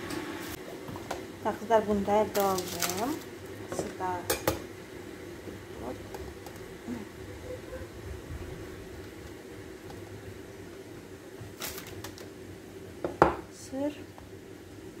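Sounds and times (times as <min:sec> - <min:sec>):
steady low hum: 0:00.4 - 0:11.6.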